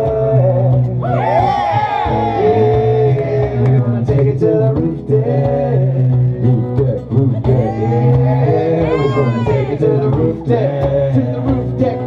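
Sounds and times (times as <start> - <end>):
low bass line: 0.0 - 12.0
strummed acoustic guitars: 0.0 - 12.0.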